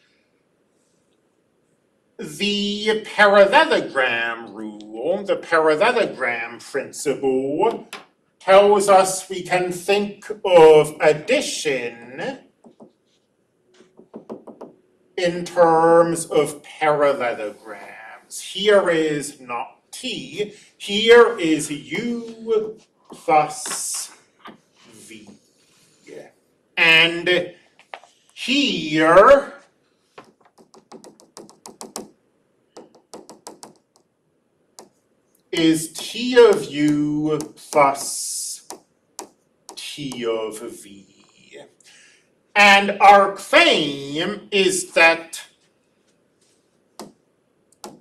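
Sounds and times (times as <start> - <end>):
stylus tapping on a screen: 12.6 - 13.2, 13.8 - 14.8, 30.2 - 32.2, 32.8 - 34.1, 38.6 - 40.2, 47.0 - 47.2, 47.8 - 48.0.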